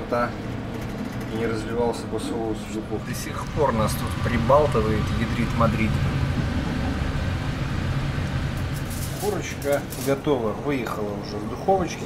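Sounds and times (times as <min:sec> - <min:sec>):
ship engines droning: 0:00.0 - 0:12.0.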